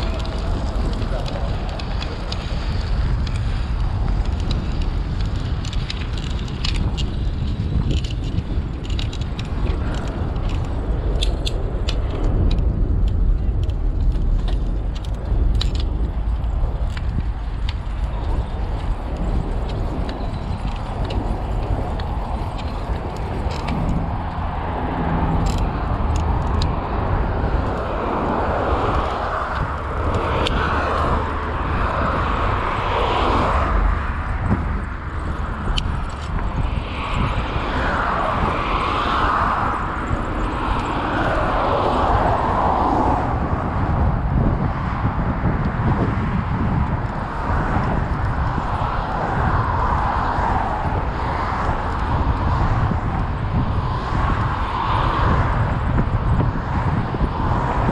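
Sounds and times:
vehicle traffic passing: 0:00.0 - 0:43.6
wind rumble on microphone: 0:00.0 - 0:57.9.

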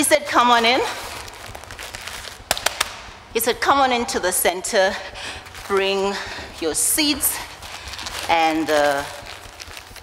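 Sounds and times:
low steady hum: 0:00.0 - 0:10.0
seed packet crackling: 0:00.6 - 0:03.1, 0:06.8 - 0:10.0.

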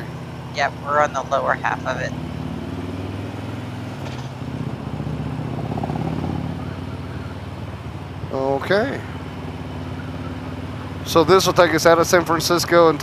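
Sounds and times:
motorcycle engine drone: 0:00.0 - 0:13.0
road and wind noise: 0:00.0 - 0:13.0.

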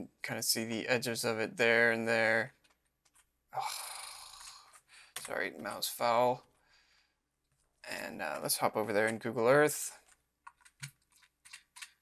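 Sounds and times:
man sighing: 0:03.6 - 0:04.7.

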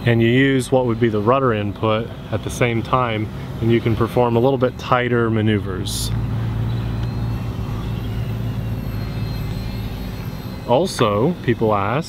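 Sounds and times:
high motor whine: 0:00.0 - 0:12.0
helicopter rotor hum: 0:02.1 - 0:12.0.

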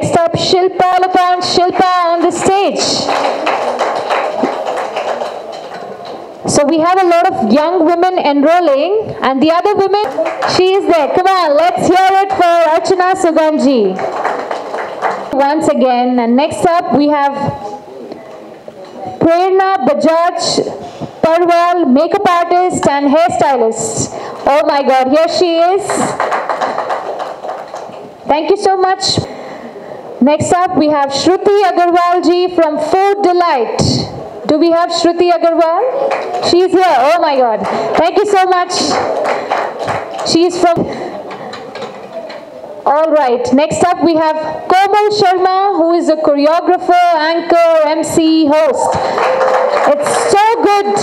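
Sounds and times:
audience clapping: 0:01.6 - 0:06.5, 0:10.0 - 0:11.2, 0:13.8 - 0:15.4, 0:25.9 - 0:28.2, 0:36.0 - 0:42.4, 0:48.8 - 0:51.0.

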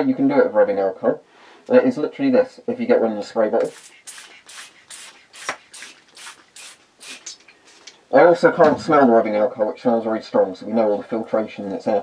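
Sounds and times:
spray bottle hissing sprays: 0:03.6 - 0:07.9.

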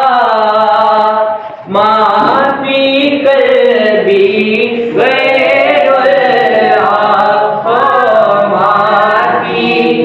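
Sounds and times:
voices singing unaccompanied: 0:00.0 - 0:10.0.

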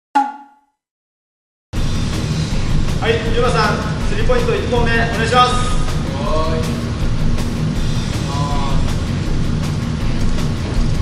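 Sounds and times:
background music: 0:01.8 - 0:11.0
steady low rumble: 0:01.8 - 0:11.0.

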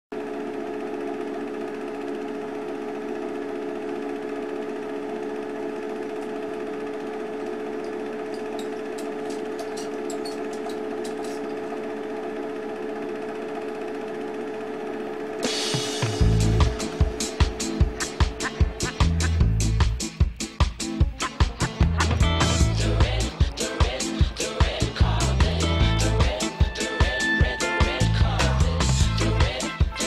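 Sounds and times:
film projector whirring: 0:00.1 - 0:30.0
song with drums: 0:15.4 - 0:30.0.

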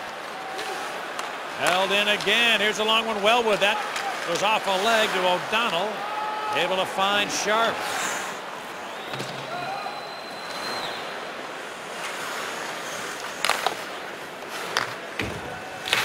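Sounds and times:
skates scraping ice: 0:00.0 - 0:09.7, 0:10.4 - 0:16.0
clacks of sticks and puck: 0:00.6 - 0:02.4, 0:13.0 - 0:16.0.

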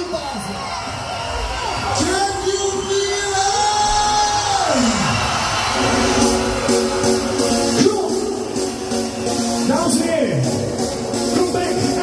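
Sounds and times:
backing track: 0:01.2 - 0:12.0.

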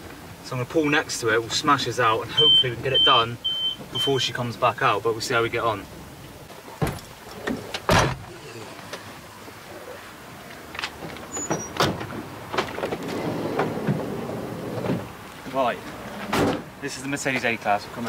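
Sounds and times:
low vehicle background: 0:00.0 - 0:18.0
sharp knocks and clunks: 0:06.8 - 0:08.3, 0:16.2 - 0:16.7.

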